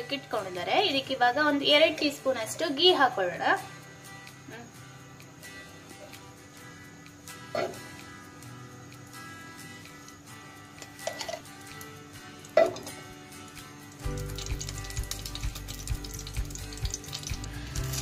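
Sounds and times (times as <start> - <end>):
background music with low beat: 3.7 - 18.0
food sizzling in a pan: 4.1 - 18.0.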